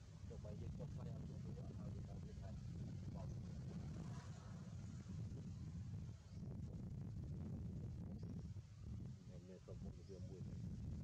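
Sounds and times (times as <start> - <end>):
low wind rumble: 0.0 - 11.0.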